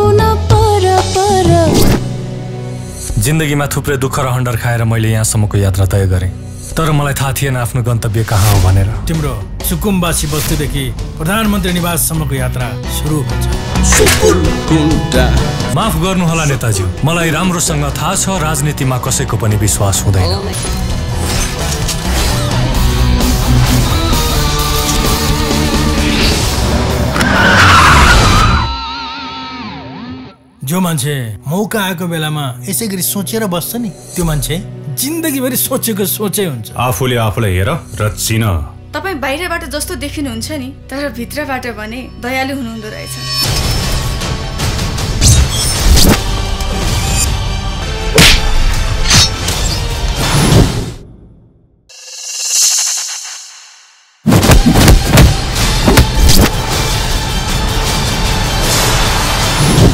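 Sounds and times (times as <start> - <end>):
car tyres screeching: 27.0 - 30.0.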